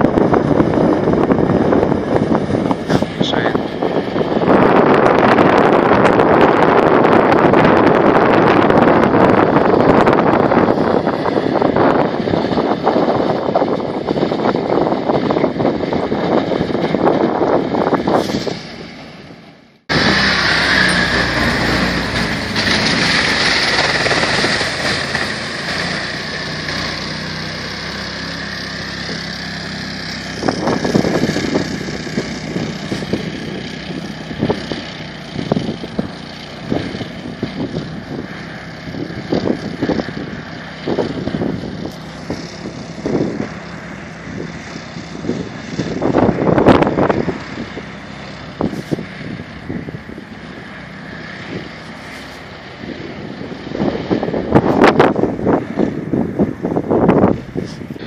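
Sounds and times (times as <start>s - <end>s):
loud noisy engine surges: 0.0s - 58.0s
tracked vehicle engine running: 0.0s - 58.0s.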